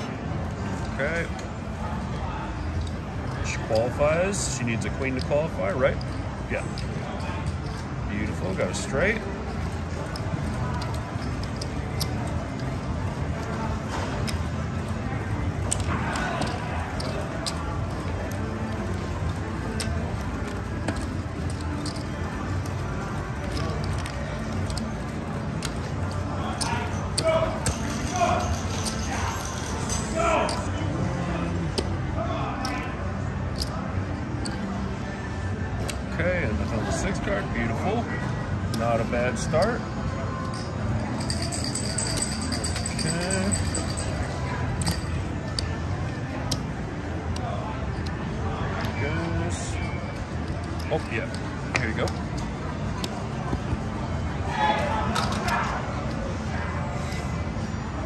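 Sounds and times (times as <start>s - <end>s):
casino chips clicking: 5.0s - 13.6s, 14.2s - 30.7s, 33.5s - 33.8s
crowd hubbub: 6.4s - 38.7s, 39.4s - 58.0s.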